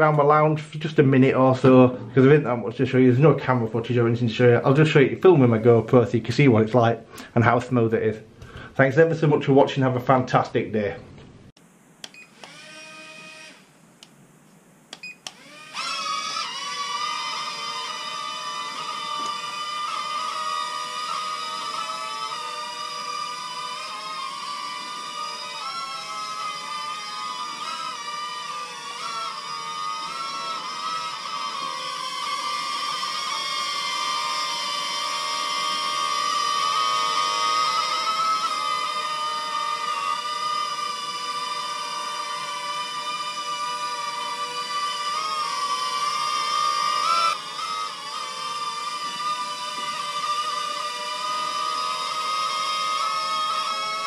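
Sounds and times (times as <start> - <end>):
quadcopter motors whining: 12.0 - 13.7, 15.0 - 54.0.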